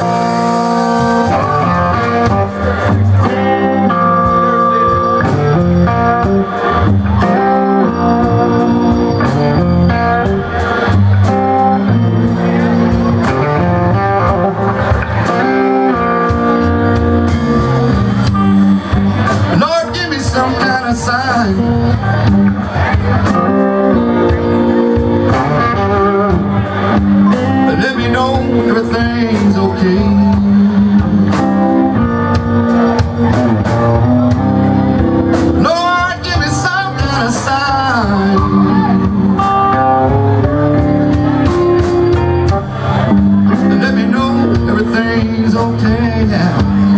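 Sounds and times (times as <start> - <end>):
electric blues band playing: 0.0 - 46.9
sustained guitar notes: 0.0 - 46.9.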